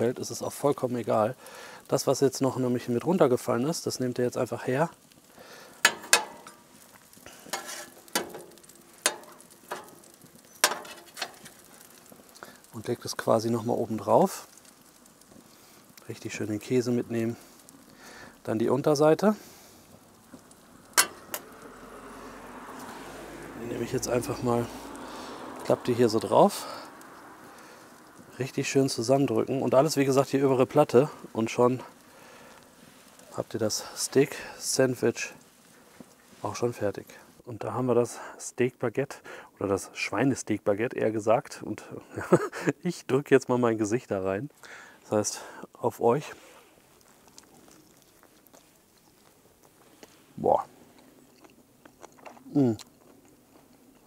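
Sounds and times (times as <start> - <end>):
food sizzling on a grill: 0.0 - 51.8
person chewing bread: 46.5 - 54.0.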